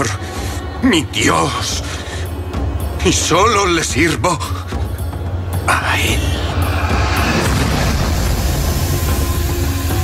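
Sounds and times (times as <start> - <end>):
deep rumbling drone: 6.2 - 10.0.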